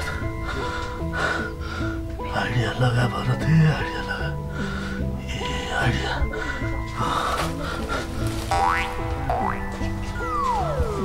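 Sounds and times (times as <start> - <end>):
comedy music melody: 0.0 - 11.0.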